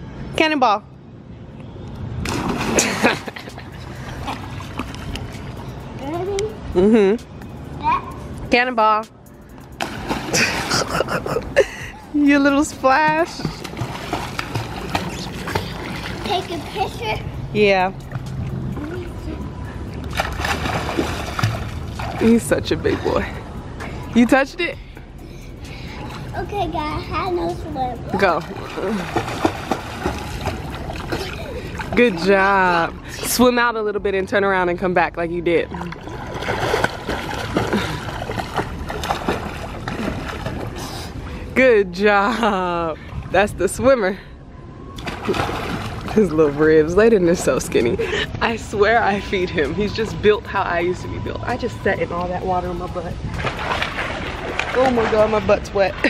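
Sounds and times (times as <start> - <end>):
pool water splashing: 2.1 - 7.6, 9.6 - 24.8, 25.5 - 44.2, 44.9 - 56.0.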